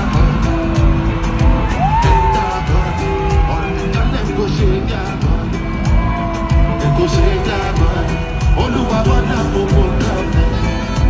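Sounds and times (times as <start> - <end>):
bass drum beat: 0.0 - 11.0
live afrobeat band music: 0.0 - 11.0.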